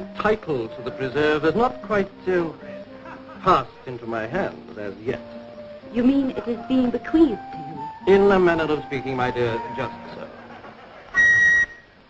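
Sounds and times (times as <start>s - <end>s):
wooden pipe shrill high note: 11.2s - 11.9s.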